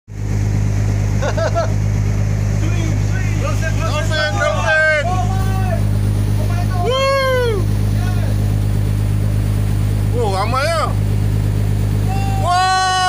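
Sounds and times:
boat engine droning: 0.1 - 13.0
people calling out: 6.5 - 7.8, 12.0 - 13.0.

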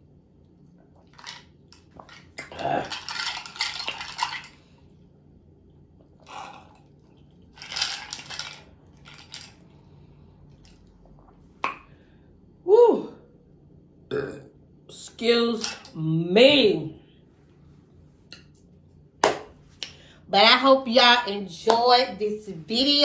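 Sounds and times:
ice rattling in a glass: 1.1 - 4.6, 7.5 - 9.7
loud burp: 2.4 - 3.0, 6.2 - 6.8, 14.1 - 14.6.

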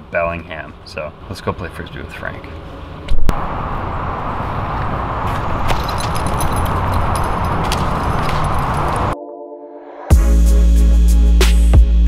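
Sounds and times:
vehicle rushing noise: 2.9 - 9.2.

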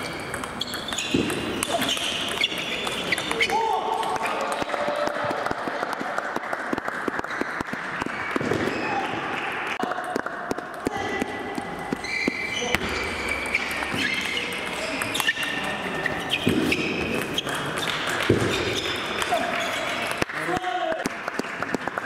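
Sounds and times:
table tennis balls clicking: 0.0 - 5.2, 6.3 - 8.8, 9.8 - 22.0.

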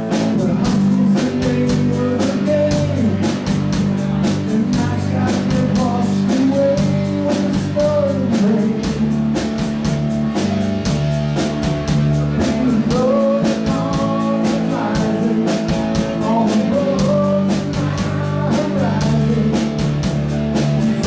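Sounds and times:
bass guitar: 0.0 - 21.0
drum kit steady beat: 0.0 - 21.0
electric guitars: 0.0 - 21.0.

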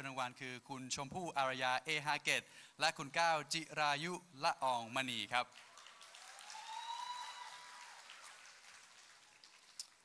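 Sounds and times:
faint audience applause: 5.5 - 10.0.

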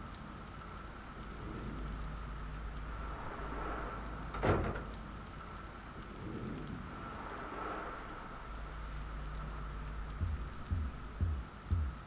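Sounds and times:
faint crackles: 0.0 - 12.0
low rumble: 0.0 - 12.0
steady hiss: 0.0 - 12.0.

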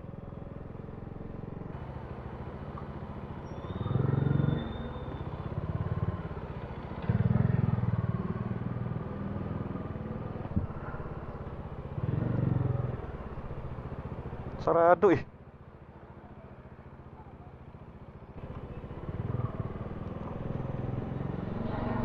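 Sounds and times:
motorcycle engine droning: 0.0 - 22.0.

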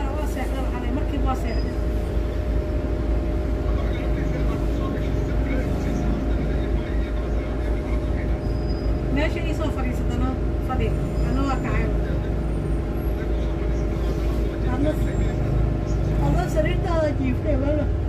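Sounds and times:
bus rumbling: 0.0 - 18.0
constant hum: 0.0 - 18.0
passengers talking: 0.0 - 18.0.

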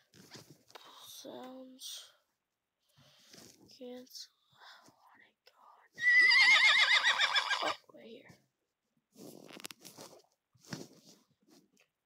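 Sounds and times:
horse neighing: 6.0 - 7.8.

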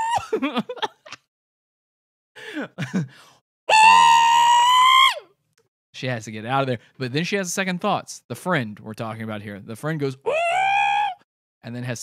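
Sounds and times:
person laughing: 0.0 - 1.3, 2.4 - 3.2
person saying ooh: 3.7 - 5.2, 10.3 - 11.2
high-pitched voiced cry: 3.7 - 5.3, 10.3 - 11.2.

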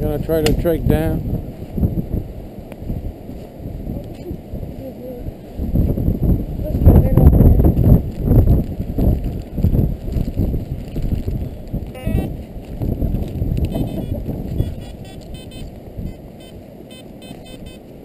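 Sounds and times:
wind buffeting microphone: 0.0 - 18.0
metal detector beeps: 13.7 - 17.9.

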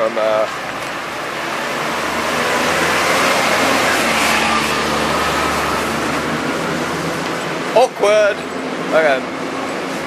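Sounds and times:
vehicle engine passing by: 0.5 - 10.0.

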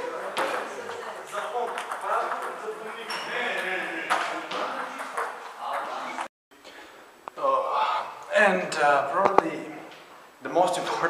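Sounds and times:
players' voices: 0.0 - 6.3
table tennis balls clicking: 0.3 - 3.3.

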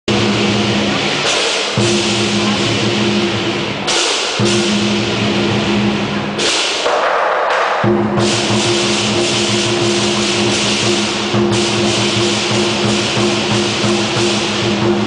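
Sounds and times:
cymbals clashing: 0.1 - 15.0
large drum beating: 0.1 - 15.0.

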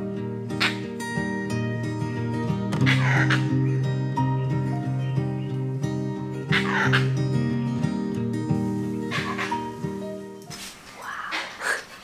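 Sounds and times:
background music: 0.0 - 11.8
monkey alarm barks: 6.5 - 7.0, 9.1 - 9.7.

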